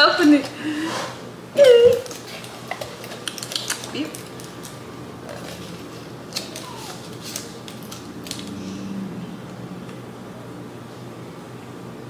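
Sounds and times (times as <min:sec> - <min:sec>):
aluminium foil crinkling: 0:02.0 - 0:08.6.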